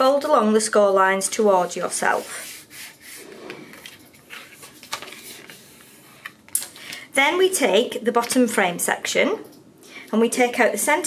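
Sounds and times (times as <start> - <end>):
card rubbing and rustling: 2.1 - 6.4.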